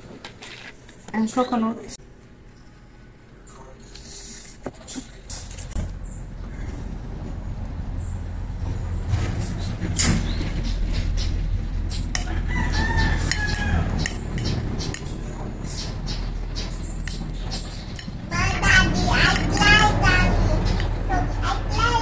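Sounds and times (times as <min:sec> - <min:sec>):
steady low rumble: 0:05.7 - 0:22.0
rooster crowing: 0:12.2 - 0:14.3.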